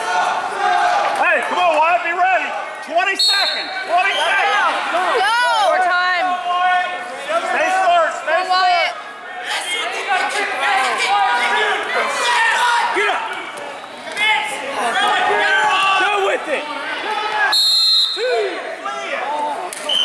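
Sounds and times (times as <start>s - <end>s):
voices calling out in gym: 0.0s - 20.0s.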